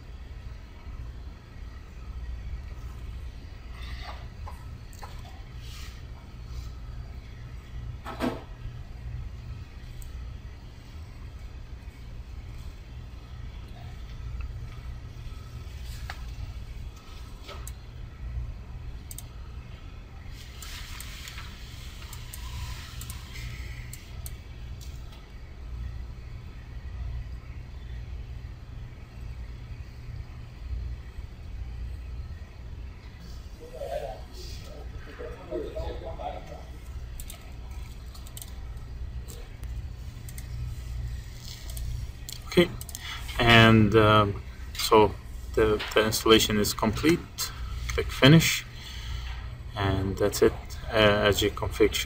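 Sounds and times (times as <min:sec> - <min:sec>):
low hum: 0:00.0 - 0:52.0
faint clicks: 0:19.0 - 0:19.3.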